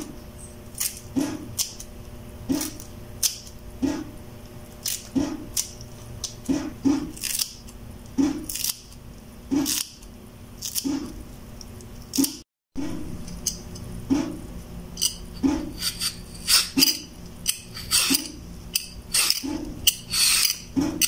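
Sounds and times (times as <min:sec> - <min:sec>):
scissors snipping spring onions: 0:04.8 - 0:11.2.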